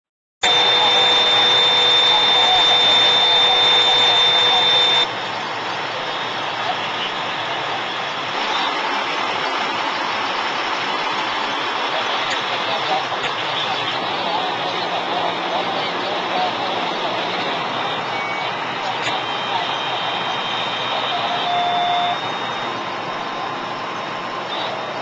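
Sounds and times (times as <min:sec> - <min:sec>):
steady high whine: 0:00.4 - 0:25.0
vehicle engines running: 0:00.6 - 0:25.0.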